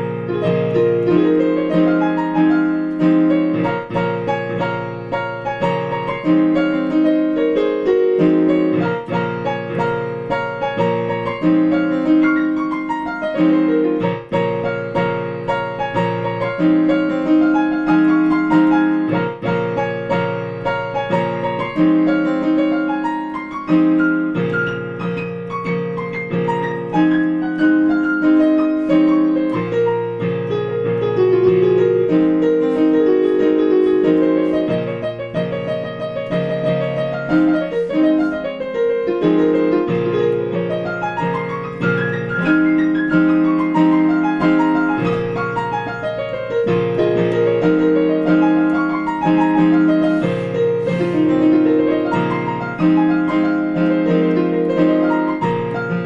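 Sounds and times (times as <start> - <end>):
digital piano piece: 0.0 - 56.0.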